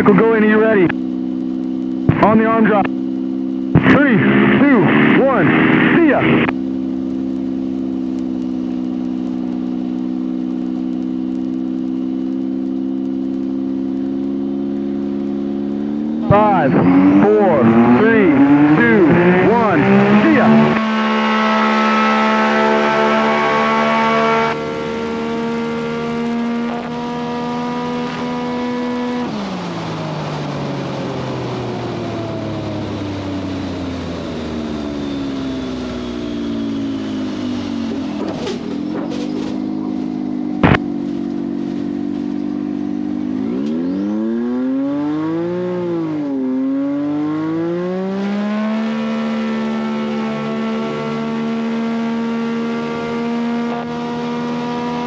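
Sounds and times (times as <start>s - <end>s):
propeller plane engine: 0.0s - 55.0s.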